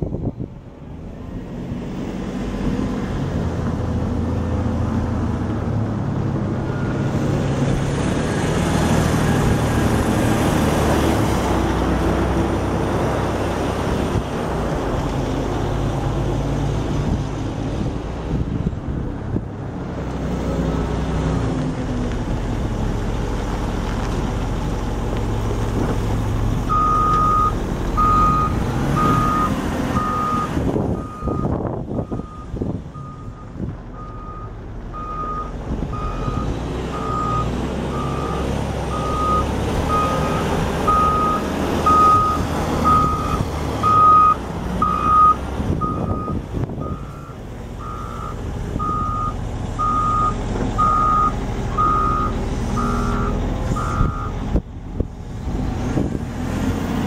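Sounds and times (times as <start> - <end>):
diesel engine running: 0.0 - 57.0
backup alarm beeps: 39.0 - 54.3.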